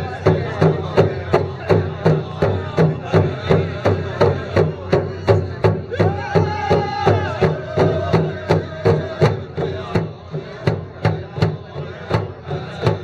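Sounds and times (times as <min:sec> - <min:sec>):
drum beating steadily: 0:00.0 - 0:13.0.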